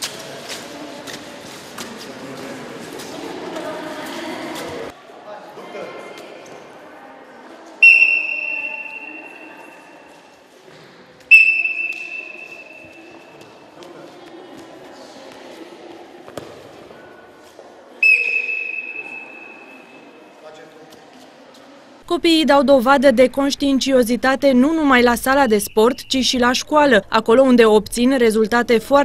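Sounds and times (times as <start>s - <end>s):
gym hall murmur: 0.0s - 29.0s
referee's whistle blast: 7.8s - 9.5s, 11.3s - 13.0s, 18.0s - 19.8s.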